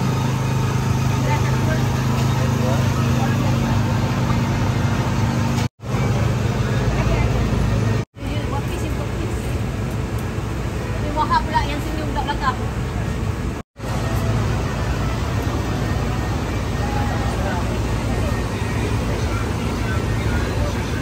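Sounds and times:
people talking: 0.0 - 9.9, 10.8 - 21.0
traffic rumble: 0.0 - 21.0.

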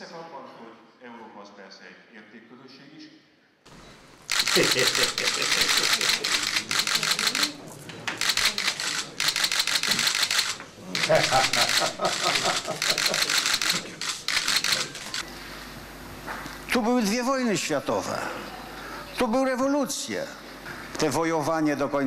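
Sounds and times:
camera shutters firing: 4.3 - 15.2
low voices: 4.4 - 15.2.

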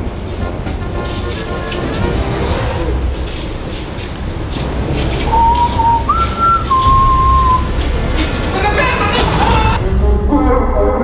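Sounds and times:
person whistling: 5.3 - 7.8.

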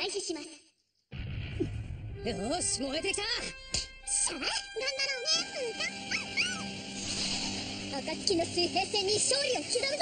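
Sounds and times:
background music: 1.6 - 10.0.

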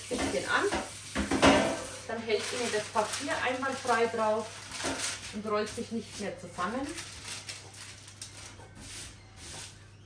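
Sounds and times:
baking paper rustling and rubbing: 0.3 - 10.0.

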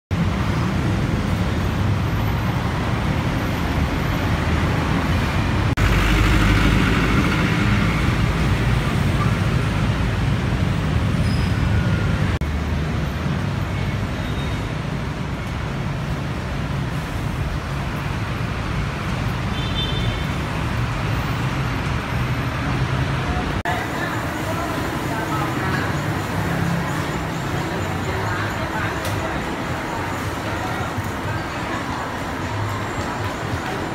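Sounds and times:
road traffic rumble: 0.1 - 33.9
indoor hubbub of voices: 23.0 - 33.9.

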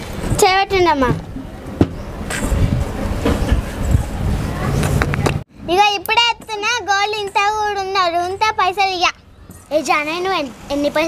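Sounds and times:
girl speaking: 0.4 - 1.2, 5.6 - 11.0.

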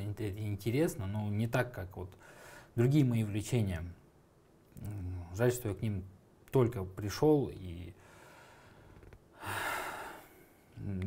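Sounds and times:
man speaking: 0.0 - 2.2, 2.8 - 4.0, 4.8 - 8.0, 10.7 - 11.0
man's gasp-like inhale: 8.0 - 10.6.

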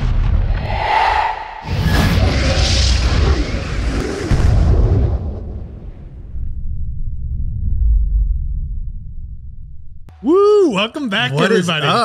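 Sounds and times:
low rumble: 0.0 - 10.1
deep cinematic boom: 0.0 - 10.2.

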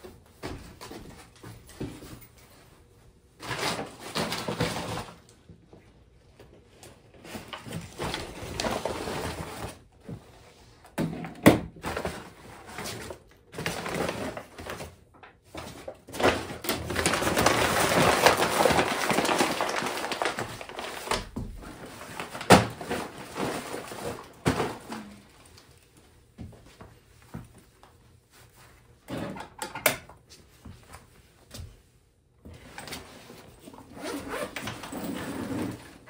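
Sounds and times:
bag rustling and crinkling: 15.6 - 25.5
zipper being pulled: 33.8 - 36.0.

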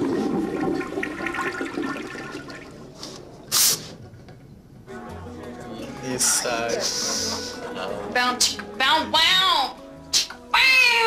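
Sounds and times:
toilet flushing: 0.0 - 3.3.

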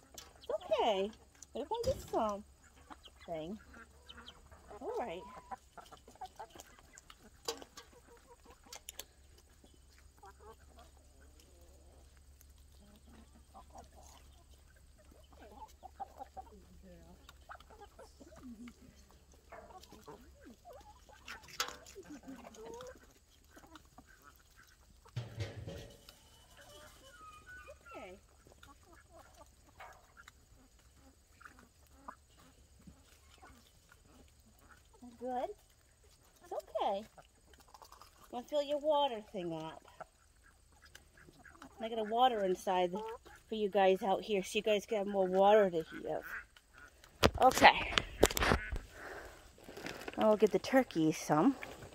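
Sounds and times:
chickens and ducks clucking: 0.0 - 51.9.

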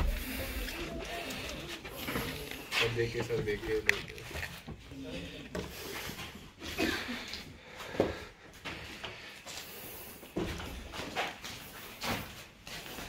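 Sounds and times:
indistinct talk of people: 0.0 - 8.2.

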